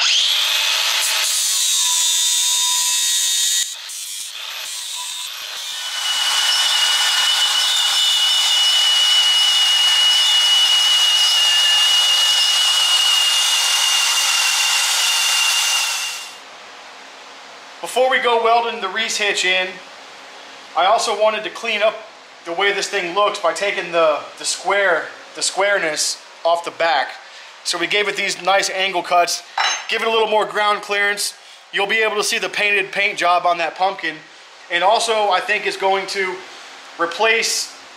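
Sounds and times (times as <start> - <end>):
angle grinder grinding metal: 0.0 - 16.4.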